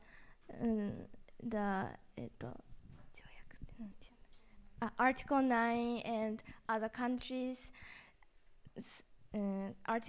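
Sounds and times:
woman whispering: 3.0s - 4.2s.

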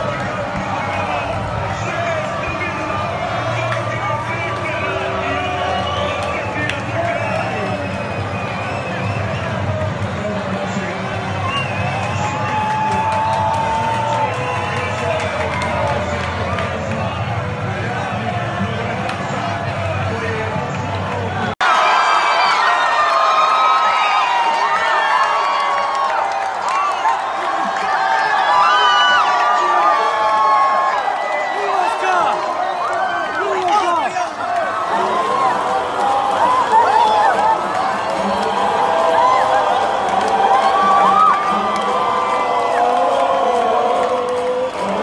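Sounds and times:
crowd cheering and shouting: 0.0s - 45.0s.

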